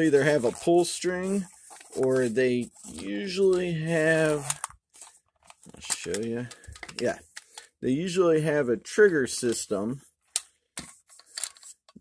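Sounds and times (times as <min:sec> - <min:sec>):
plastic scraping and rustling: 0:00.0 - 0:07.7.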